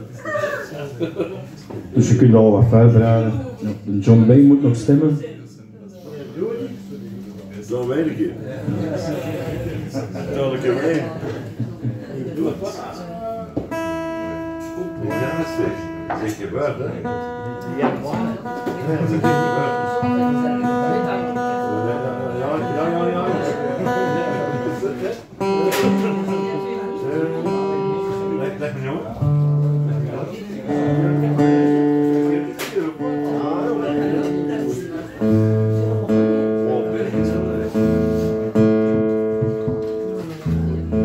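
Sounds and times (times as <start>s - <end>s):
acoustic guitar music: 13.5s - 41.0s
melody of long held notes: 13.7s - 41.0s.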